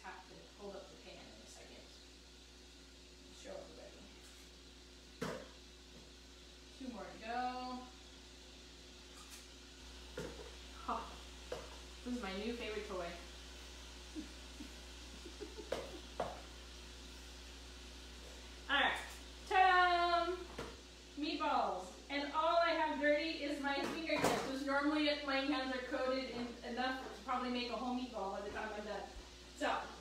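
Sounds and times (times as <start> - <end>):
woman's voice: 0.0 - 1.9, 3.4 - 4.2, 6.8 - 8.0, 10.8 - 11.2, 12.0 - 13.2, 18.7 - 20.5, 21.2 - 30.0
faint steady hum: 0.0 - 30.0.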